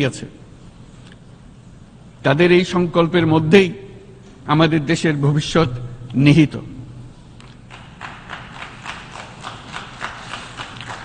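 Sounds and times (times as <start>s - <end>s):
people clapping: 7.6s - 11.0s.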